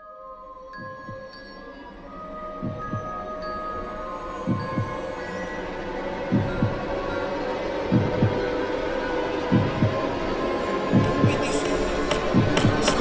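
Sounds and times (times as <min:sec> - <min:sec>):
heartbeat thumps: 0:00.8 - 0:01.3, 0:02.6 - 0:03.2, 0:04.5 - 0:05.0, 0:06.3 - 0:06.9, 0:07.9 - 0:08.5, 0:09.5 - 0:10.1, 0:10.9 - 0:13.0.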